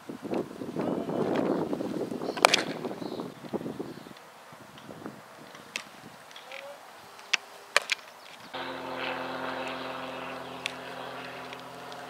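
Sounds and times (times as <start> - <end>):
engine drone: 8.6 - 12.0.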